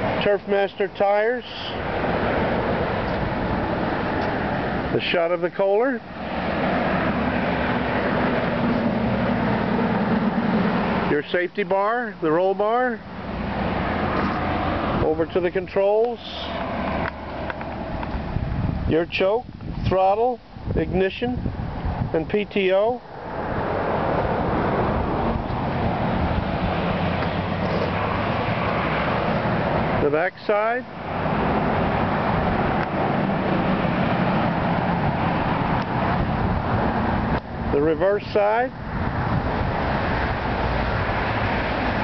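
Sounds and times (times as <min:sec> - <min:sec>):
outdoor rushing noise: 0:00.0 - 0:12.2, 0:13.1 - 0:20.0, 0:20.6 - 0:42.0.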